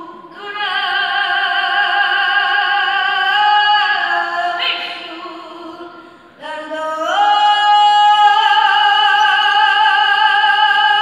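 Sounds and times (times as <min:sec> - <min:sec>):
boy singing into a microphone: 0:00.0 - 0:11.0.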